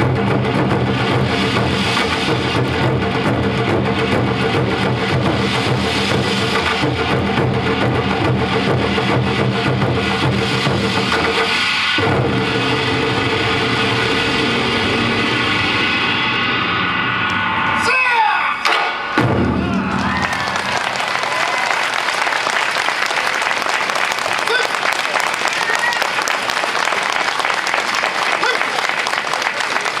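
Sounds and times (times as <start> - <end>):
taiko drums rolling: 0.0 - 17.8, 18.6 - 28.2
audience applause: 19.7 - 30.0
drummers shouting calls: 24.3 - 26.2.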